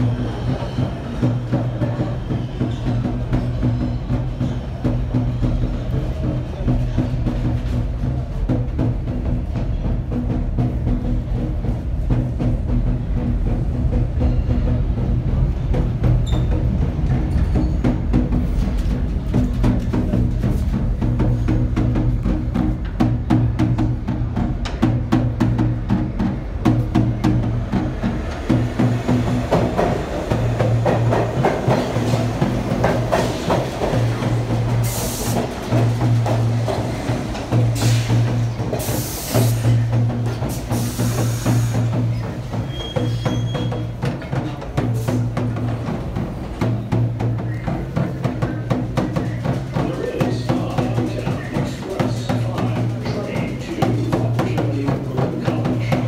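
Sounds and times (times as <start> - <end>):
music with drum beat and bass: 0.0 - 56.0
subway train rumble: 0.0 - 56.0.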